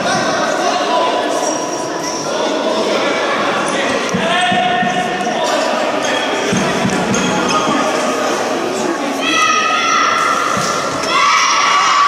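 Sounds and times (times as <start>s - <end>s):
people shouting: 9.2s - 12.0s.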